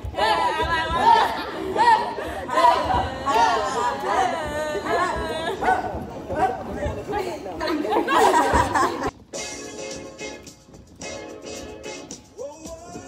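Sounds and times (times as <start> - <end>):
young women shouting: 0.0 - 6.5.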